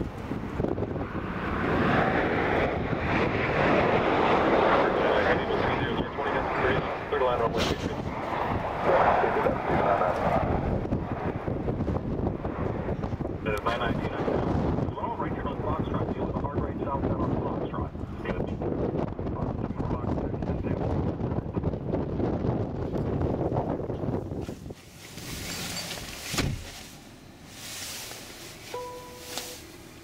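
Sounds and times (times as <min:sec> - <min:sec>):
wind buffeting microphone: 0:00.0 - 0:26.7
short electronic beep: 0:28.7 - 0:29.6.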